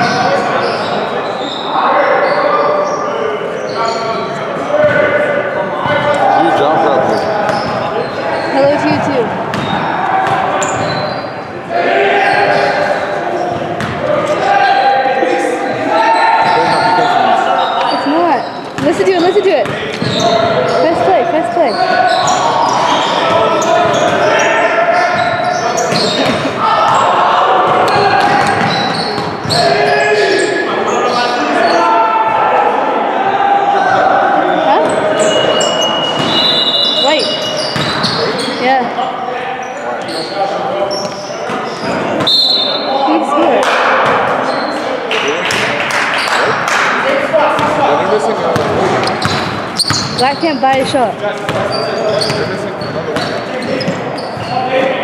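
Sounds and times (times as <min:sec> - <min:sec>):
indistinct voices echoing: 0:00.0 - 0:55.0.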